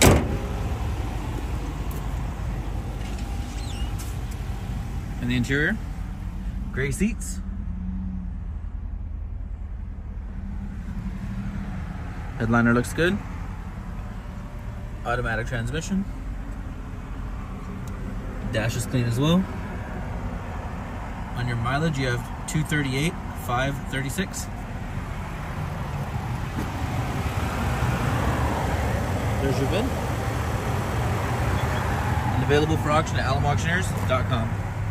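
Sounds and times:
car engine idling hum: 0.0 - 34.9
rushing outdoor noise: 0.0 - 34.9.

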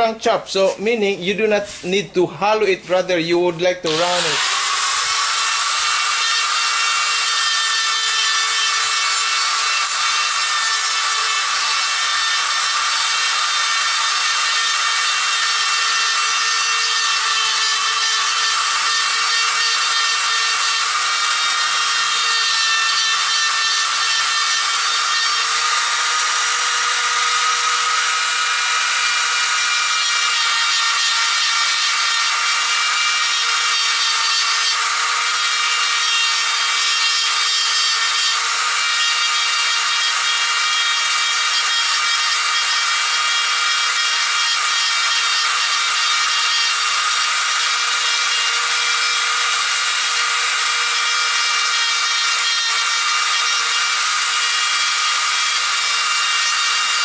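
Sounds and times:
bit grinding wood: 0.0 - 57.0
electric carving tool whining: 3.4 - 57.0.

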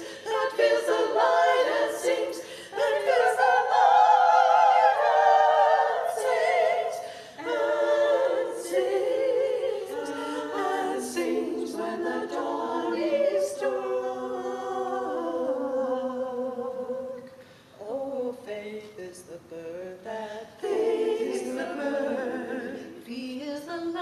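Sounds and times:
choir singing a cappella: 0.0 - 17.4, 19.6 - 24.0.

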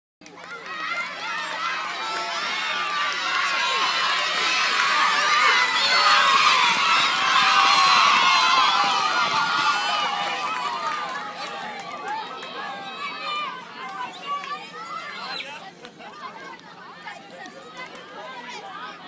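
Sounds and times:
children shouting and cheering: 0.2 - 19.0.

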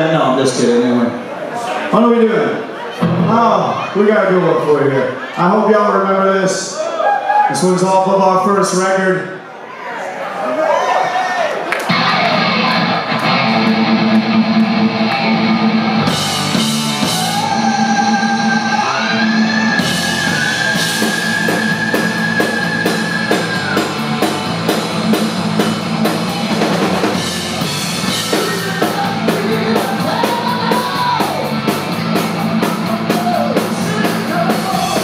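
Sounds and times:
bass guitar: 11.9 - 35.0
distorted electric guitars: 11.9 - 35.0
drums and cymbals: 15.7 - 35.0.

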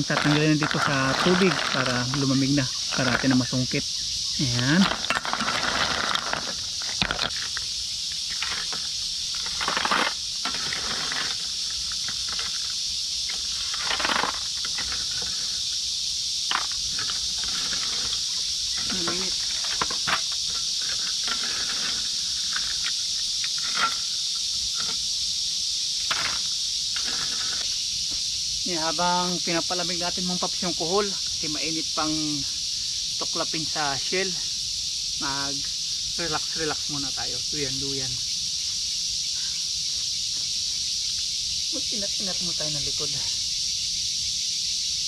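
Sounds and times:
high-pitched insect chorus: 0.0 - 45.0.

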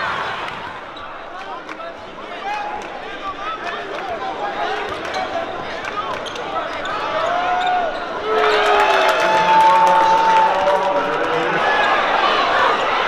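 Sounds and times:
arena crowd voices: 0.0 - 13.0.

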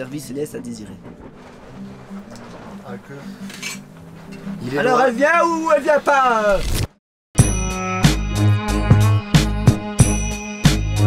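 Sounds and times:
dishes and cutlery clinking: 1.1 - 4.6.

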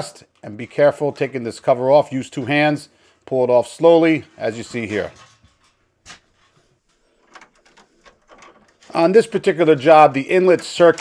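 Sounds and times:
light clicks and rattles: 5.1 - 11.0.

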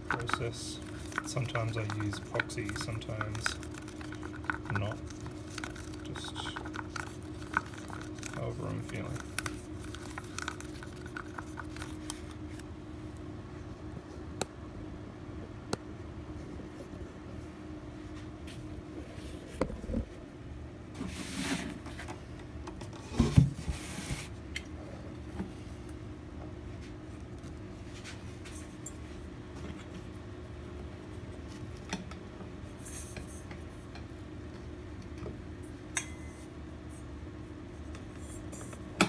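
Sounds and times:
stick scraping in plastic cup: 0.0 - 12.4
steady low hum: 0.0 - 39.0.

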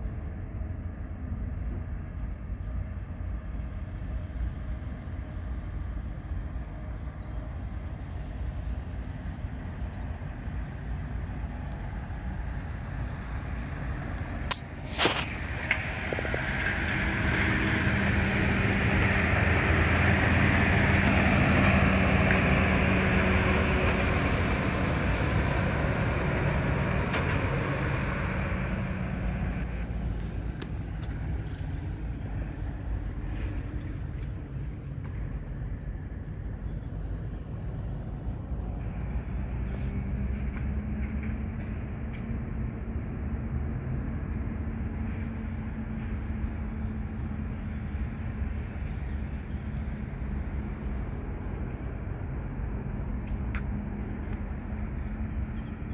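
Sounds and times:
low engine hum: 0.0 - 55.9
steady traffic noise: 0.0 - 55.9
heavy vehicle passing: 10.4 - 34.6.

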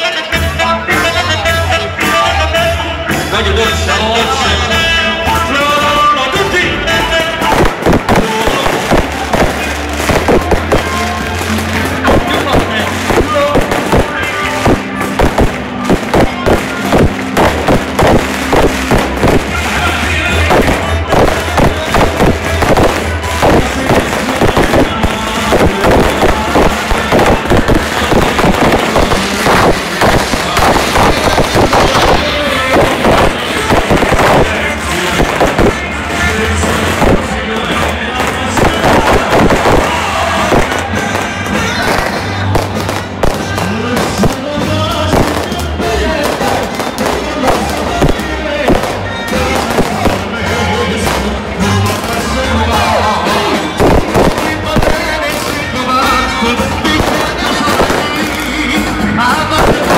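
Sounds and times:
crowd: 0.0 - 59.9
distorted festival music on loudspeakers: 0.0 - 59.9
sharp cracks and bangs: 7.4 - 52.3, 53.3 - 59.9.

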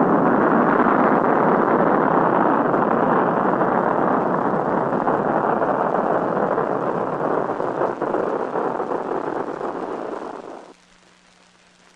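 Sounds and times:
rocket engine firing: 0.0 - 10.7.

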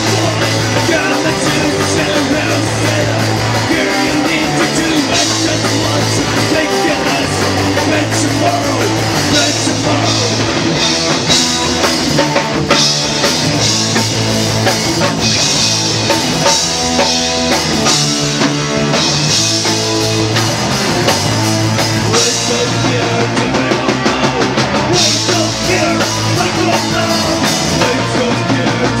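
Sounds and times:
drum kit: 0.0 - 29.0
electric guitars: 0.0 - 29.0.

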